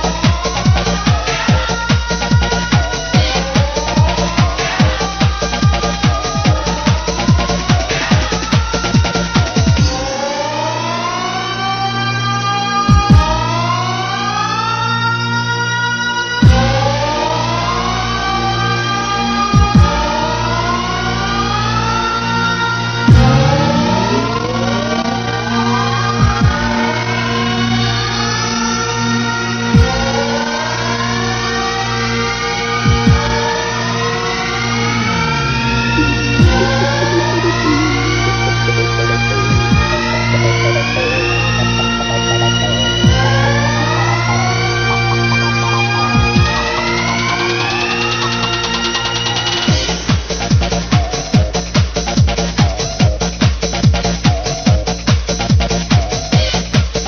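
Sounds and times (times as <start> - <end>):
synth chord rising in pitch: 20.1 - 29.6, 31.2 - 49.7
steady bass note: 23.0 - 25.6, 34.7 - 47.4
quick falling blips: 23.1 - 25.2, 35.0 - 44.1.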